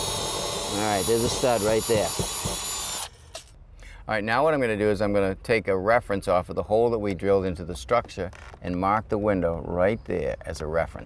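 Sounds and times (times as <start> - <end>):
drill whining: 0.0 - 3.5.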